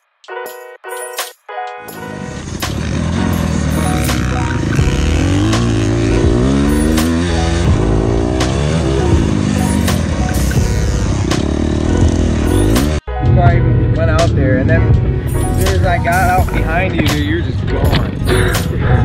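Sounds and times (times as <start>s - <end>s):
music: 0.0s - 19.0s
dirt bike engine revving: 2.0s - 13.0s.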